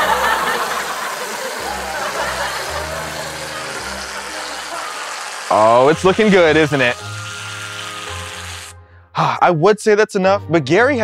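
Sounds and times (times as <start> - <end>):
whipped cream can spraying: 0.5 - 8.7.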